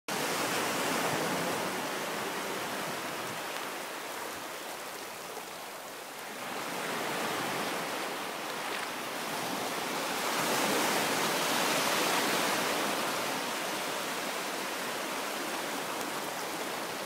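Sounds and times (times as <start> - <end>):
small waves breaking on sand: 0.1 - 17.0.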